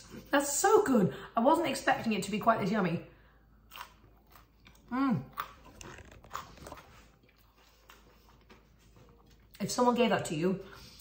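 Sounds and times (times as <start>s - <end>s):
chewing crunchy food: 3.6s - 9.8s.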